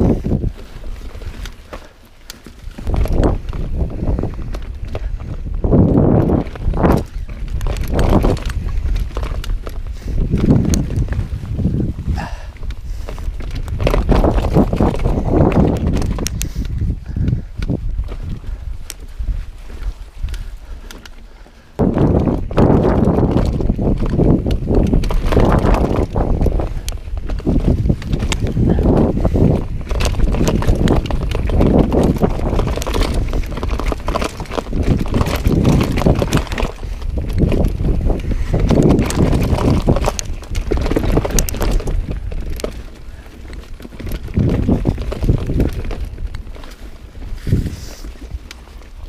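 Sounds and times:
bike clicks and rattles: 0:00.0 - 0:49.0
bike tyres rumbling on dirt: 0:00.0 - 0:49.0
wind rumble on microphone: 0:00.0 - 0:49.0.

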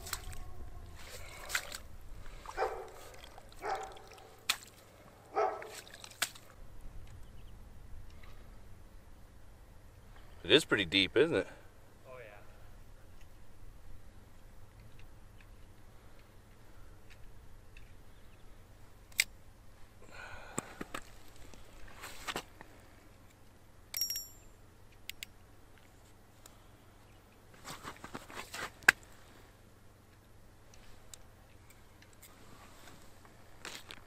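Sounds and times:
light clicks and knocks of gear: 0:14.3 - 0:18.0, 0:30.0 - 0:34.0
high metallic ring: 0:23.9 - 0:24.6.

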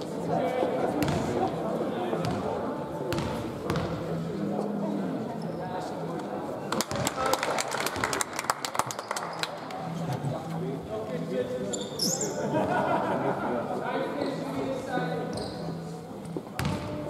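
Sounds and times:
basketball bouncing on court floor: 0:02.2 - 0:02.4, 0:03.1 - 0:03.9, 0:16.6 - 0:17.0.

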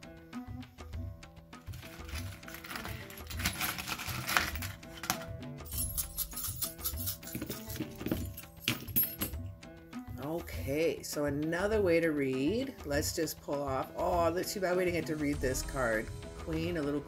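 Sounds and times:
celtic background music: 0:00.0 - 0:17.0
metal charms rattling in wooden box: 0:01.7 - 0:09.4
charms clinking onto paper: 0:01.8 - 0:09.4.

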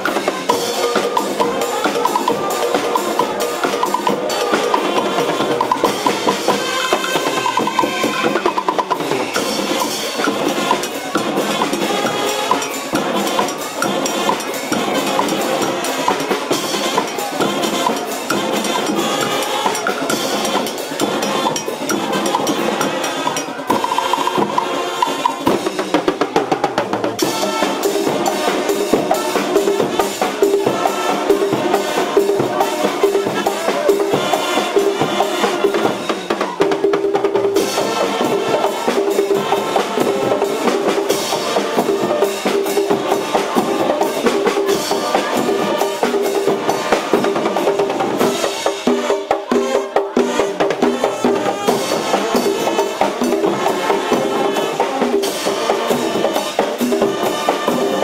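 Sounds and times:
brass horns melody: 0:00.0 - 0:26.0, 0:27.1 - 0:58.0
bass drums and snare drums: 0:00.0 - 0:58.0.

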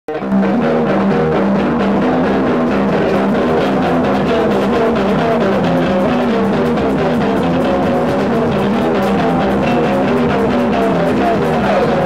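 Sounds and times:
noise rock band playing loudly: 0:00.1 - 0:12.0.

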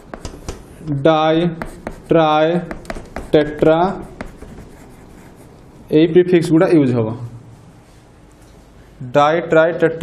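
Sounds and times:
chalk tapping on blackboard: 0:00.0 - 0:00.8, 0:01.4 - 0:05.5
chalk scratching on blackboard: 0:01.4 - 0:05.6.

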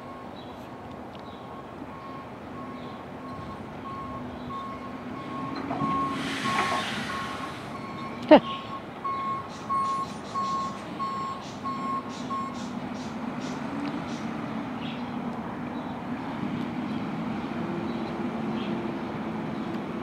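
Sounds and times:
reversing alarm beeps: 0:01.5 - 0:12.8
air-brake hiss: 0:06.0 - 0:07.8.

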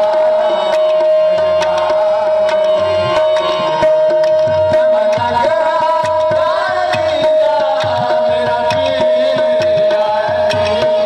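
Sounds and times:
harmonium steady note: 0:00.0 - 0:11.0
tabla quick strokes: 0:00.0 - 0:11.0.

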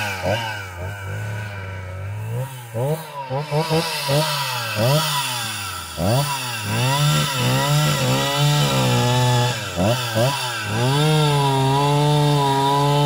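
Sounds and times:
chainsaw revving: 0:00.0 - 0:13.0.

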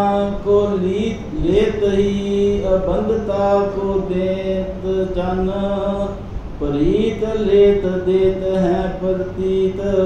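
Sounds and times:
man chanting in held notes: 0:00.0 - 0:10.0.

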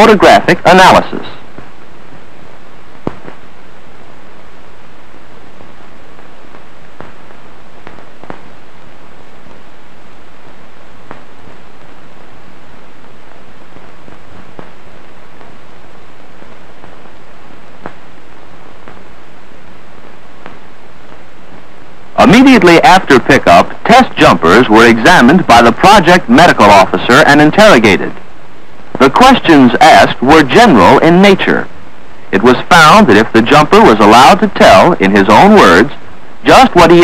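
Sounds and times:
film soundtrack hiss: 0:00.0 - 0:37.0
sharp clicks and pops: 0:03.0 - 0:03.5.

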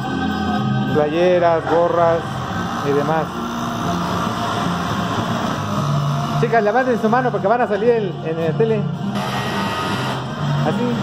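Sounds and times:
industrial sewing machines running: 0:09.2 - 0:10.9.

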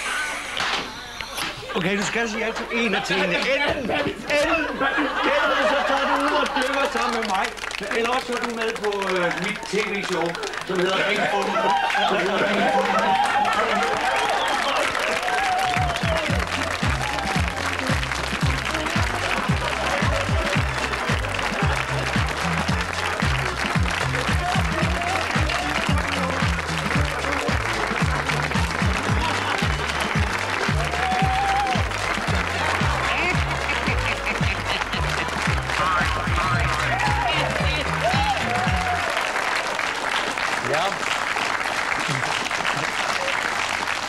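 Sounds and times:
audience applauding: 0:00.0 - 0:44.0
upbeat music with bass beat: 0:15.6 - 0:39.1.

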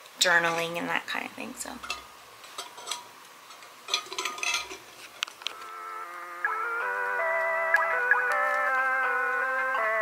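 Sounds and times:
straw and cup clinking: 0:01.8 - 0:05.3.

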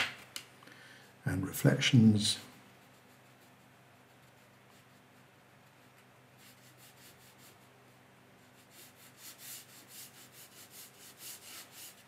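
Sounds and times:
brush strokes on paper: 0:02.4 - 0:12.0.

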